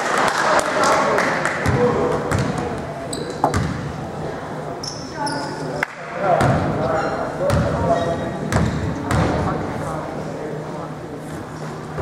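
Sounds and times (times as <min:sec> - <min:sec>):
voices echoing in gym: 0:00.0 - 0:12.0
basketball bouncing on hardwood floor: 0:03.4 - 0:03.8, 0:08.5 - 0:09.3.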